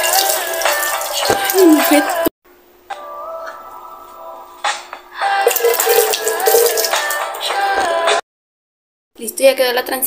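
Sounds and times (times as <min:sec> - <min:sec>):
water splashing onto face: 0:00.0 - 0:02.2, 0:05.5 - 0:07.3
pop music: 0:00.0 - 0:02.3, 0:02.9 - 0:08.2.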